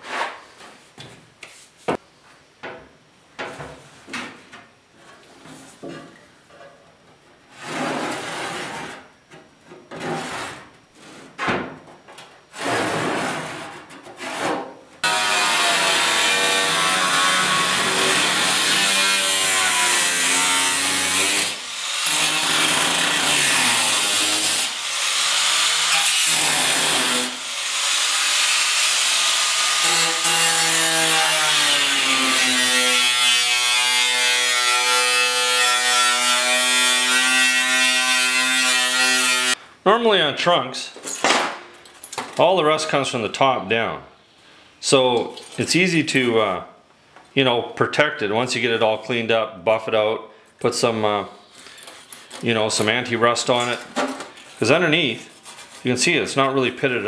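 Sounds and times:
angle grinder cutting metal: 0:15.0 - 0:39.6.

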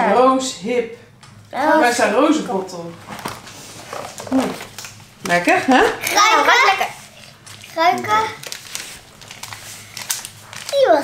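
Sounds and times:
child murmuring: 0:06.0 - 0:08.4.

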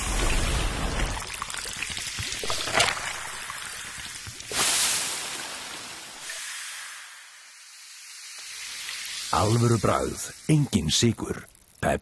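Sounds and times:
cola fizzing over ice: 0:00.0 - 0:11.9.

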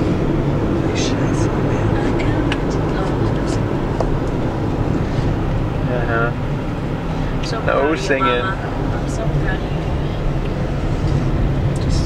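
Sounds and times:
car engine drone under load: 0:00.0 - 0:12.0.

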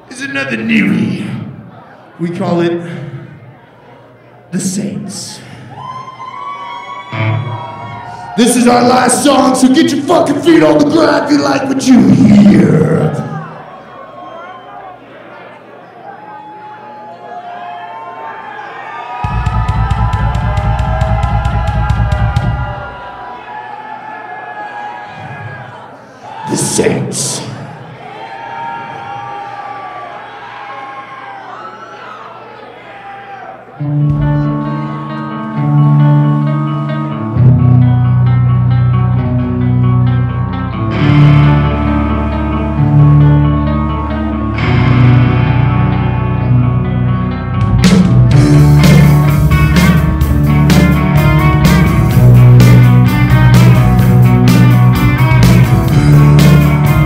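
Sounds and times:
crowd cheering and whistling: 0:05.6 - 0:09.5, 0:13.1 - 0:37.2
live rock band playing: 0:07.1 - 0:13.2, 0:19.2 - 0:23.0, 0:33.8 - 0:57.0
drum kit playing fast: 0:19.2 - 0:23.0, 0:47.6 - 0:57.0.

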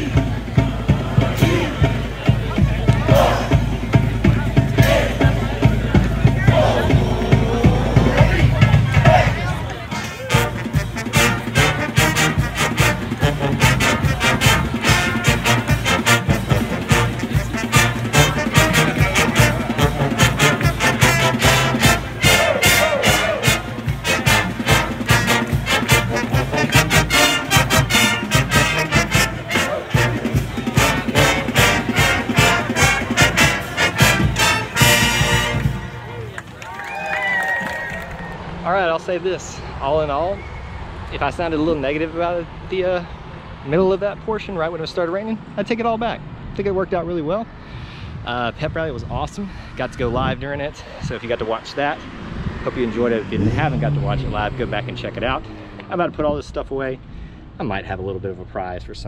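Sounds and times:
marching band playing: 0:00.0 - 0:38.6, 0:52.7 - 0:56.1
crowd noise: 0:00.0 - 0:47.6, 0:50.0 - 0:58.9.

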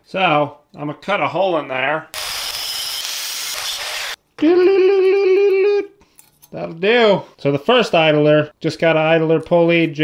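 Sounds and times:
angle grinder cutting steel: 0:02.2 - 0:04.2.

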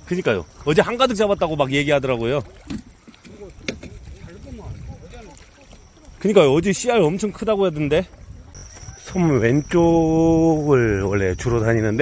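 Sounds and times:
wading through shallow water: 0:00.0 - 0:12.0.

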